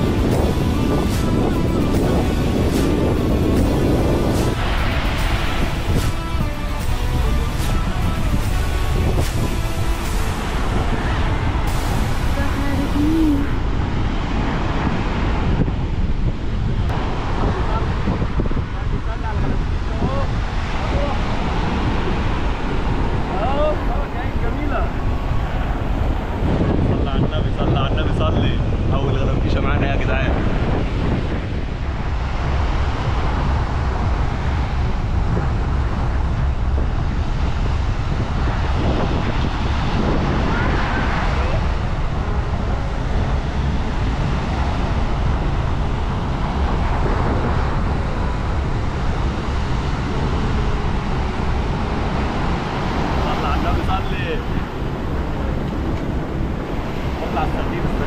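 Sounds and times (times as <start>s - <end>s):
surf breaking on shore: 0.0s - 58.0s
wind buffeting microphone: 0.0s - 58.0s.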